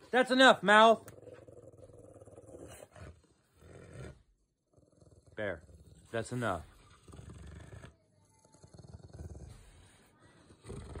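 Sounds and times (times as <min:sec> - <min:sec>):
dog growling low: 0:01.0 - 0:11.0.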